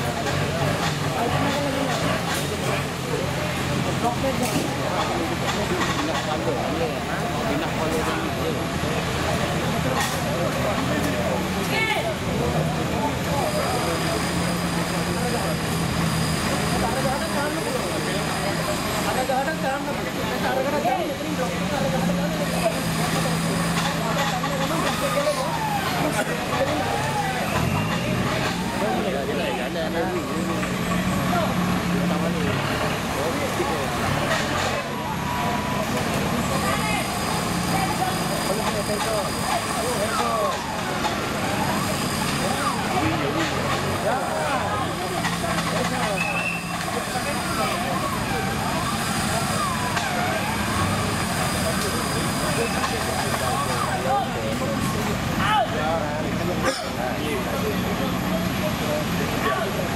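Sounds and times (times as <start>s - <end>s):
voices talking and calling out: 0.0s - 59.9s.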